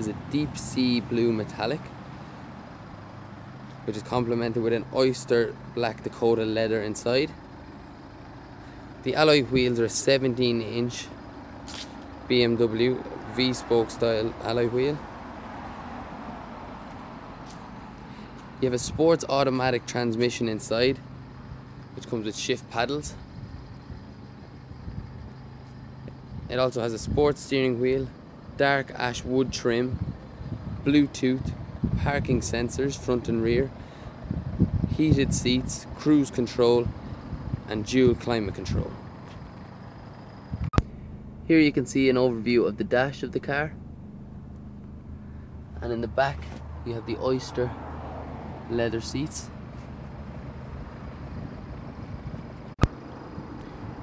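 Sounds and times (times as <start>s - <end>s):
faint outdoor background noise: 0.0s - 54.0s
steady low hum: 20.4s - 29.2s, 36.7s - 47.4s.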